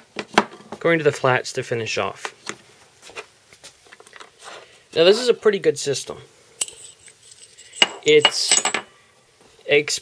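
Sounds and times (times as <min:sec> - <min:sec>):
ceramic stones clicking and knocking: 0:06.6 - 0:08.8.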